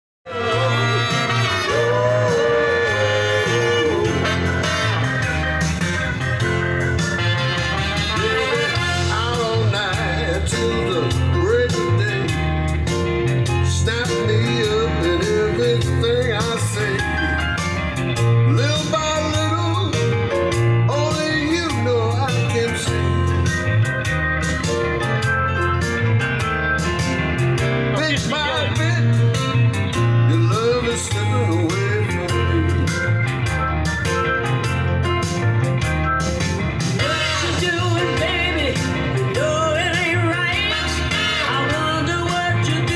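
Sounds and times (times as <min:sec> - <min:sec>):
blues music through car speakers: 0:00.3 - 0:42.9.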